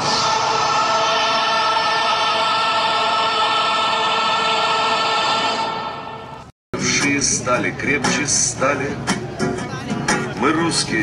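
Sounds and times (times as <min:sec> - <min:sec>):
group of voices singing a chord: 0:00.0 - 0:06.4.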